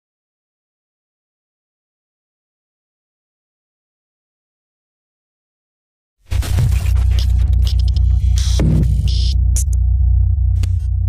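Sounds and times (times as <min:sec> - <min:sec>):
digital glitch bursts: 0:06.3 - 0:09.8
deep electronic drone: 0:06.3 - 0:11.0.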